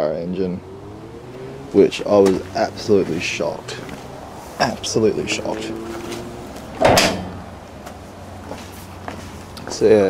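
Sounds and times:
car engine idling: 0.4s - 10.0s
thud: 6.8s - 7.4s.

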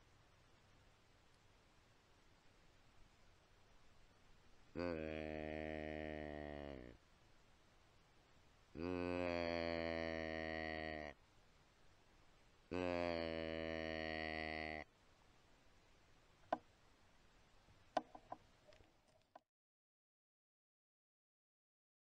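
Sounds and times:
deer call bleats: 8.8s - 11.2s, 12.7s - 14.9s.

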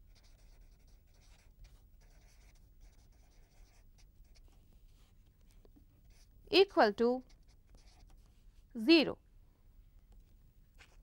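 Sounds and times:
felt-tip pen scratching on paper: 0.0s - 5.2s, 7.1s - 8.4s.

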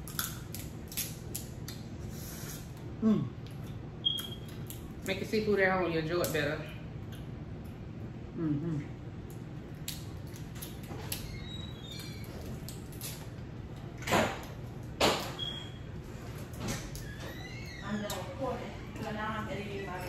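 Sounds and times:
crab legs cracking: 0.0s - 1.9s, 9.2s - 11.3s, 11.9s - 13.4s.

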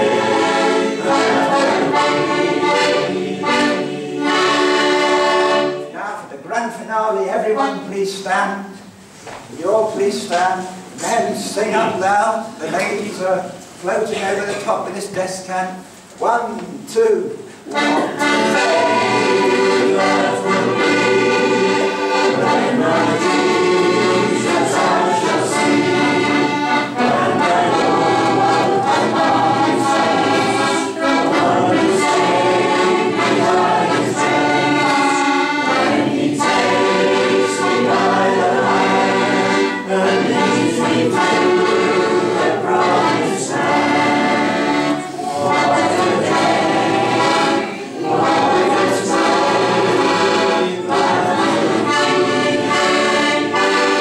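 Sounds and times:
congregation singing a hymn: 0.0s - 6.0s, 16.7s - 54.0s
piano accordion: 0.0s - 6.2s, 6.9s - 9.2s, 17.2s - 54.0s.

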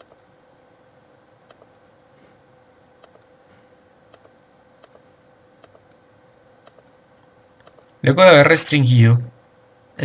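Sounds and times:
computer mouse clicks: 0.0s - 0.3s, 1.4s - 2.0s, 3.0s - 3.4s, 4.1s - 7.0s, 7.6s - 8.0s
faint steady hum: 0.0s - 10.0s.

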